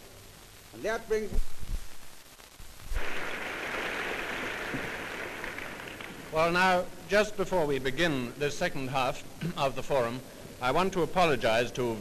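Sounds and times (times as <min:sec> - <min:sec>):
audience applauding: 0:03.0 - 0:06.6.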